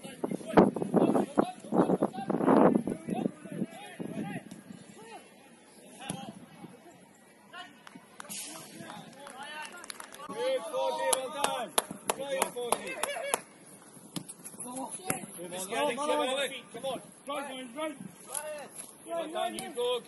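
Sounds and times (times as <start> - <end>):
footballers shouting: 9.6 - 13.5.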